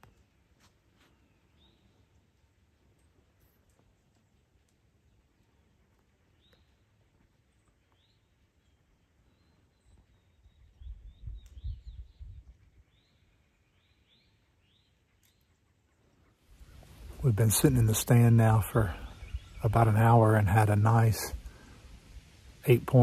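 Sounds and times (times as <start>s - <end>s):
faint birds chirping: 0.0s - 23.0s.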